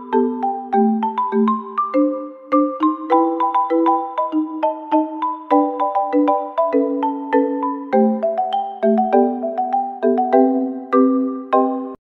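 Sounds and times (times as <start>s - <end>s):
chiming melody: 0.0s - 12.0s.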